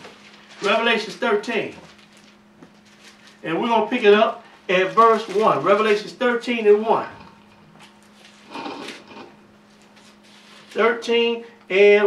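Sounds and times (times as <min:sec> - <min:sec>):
paper pages rustling: 0:00.0 - 0:03.4, 0:04.7 - 0:06.2, 0:07.8 - 0:10.9
faint steady hum: 0:00.0 - 0:12.0.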